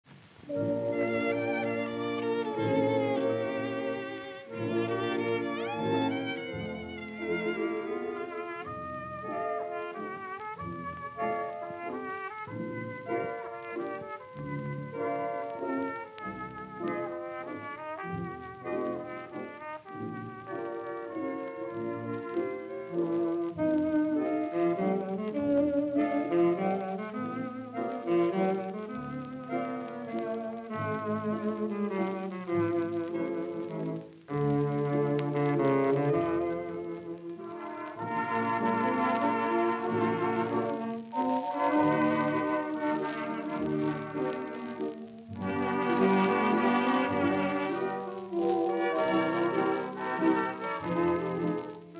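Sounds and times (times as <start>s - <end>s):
dance orchestra playing a waltz: 0.4s - 51.9s.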